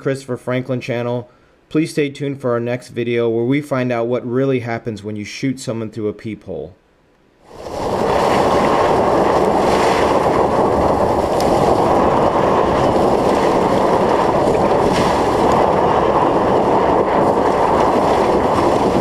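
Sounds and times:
wind rushing on microphone: 7.5 - 19.0.

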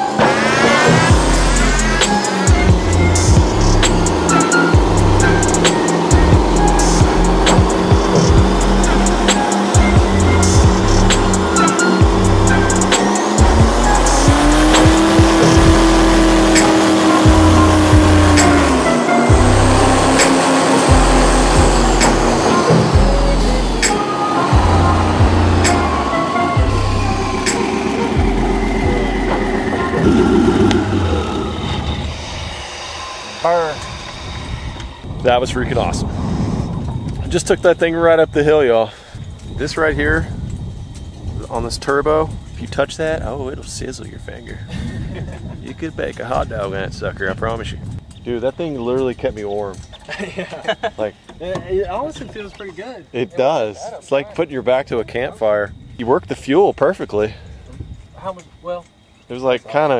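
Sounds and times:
music with heavy beat: 0.0 - 31.4
airboat engine and propeller: 0.0 - 35.1.

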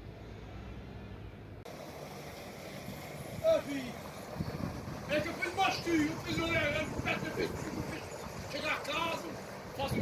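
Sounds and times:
low engine hum: 0.0 - 10.0
outdoor hiss: 1.7 - 9.9.

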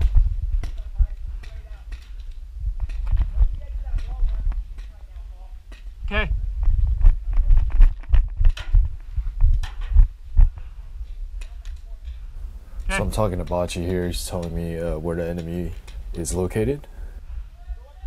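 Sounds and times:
wind rumble on microphone: 0.0 - 14.1.

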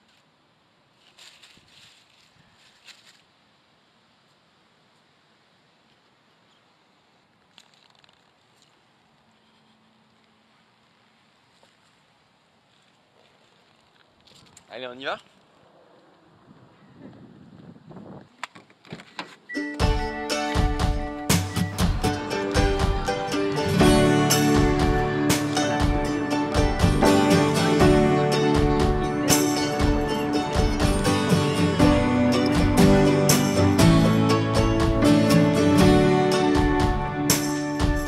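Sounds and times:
handling sounds: 0.0 - 3.4
dry leaves crackling: 0.0 - 4.4, 5.7 - 16.4
faint steady hiss: 0.0 - 16.2
background music with steady beat: 19.6 - 38.0.

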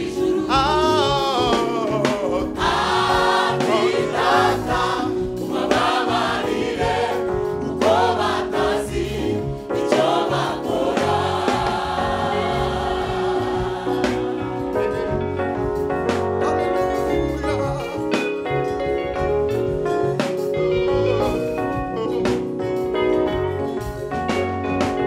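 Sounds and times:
gospel choir singing: 0.0 - 16.2
low rhythmic bass line: 0.0 - 25.0
electric guitar: 13.1 - 25.0.

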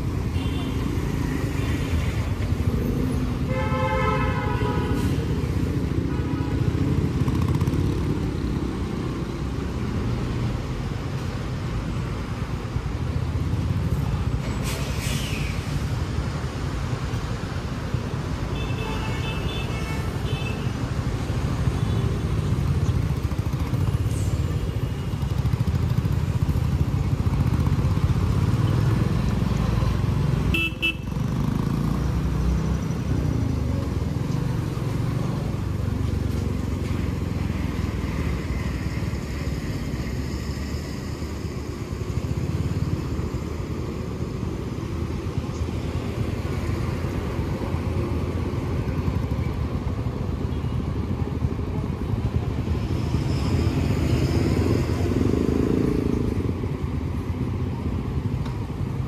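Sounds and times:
heavy truck traffic: 0.0 - 59.0
wind and road noise: 0.0 - 59.0.

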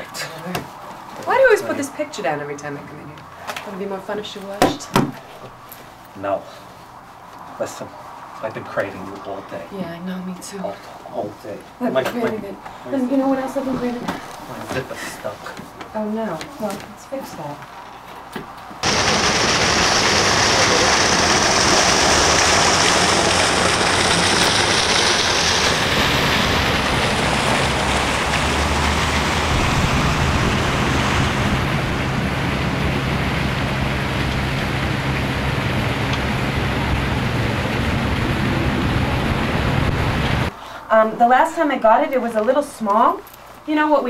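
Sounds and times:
loud steady rushing noise: 18.8 - 40.6.

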